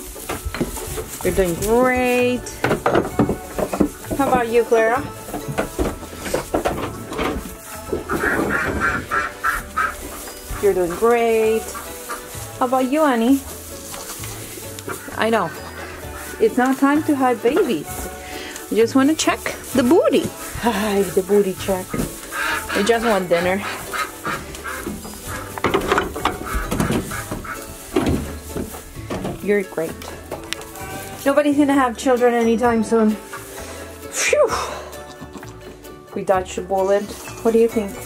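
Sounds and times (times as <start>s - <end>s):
farm animal calls: 1.3s - 31.4s
duck quacking: 8.1s - 12.3s, 22.3s - 25.5s, 26.2s - 27.7s.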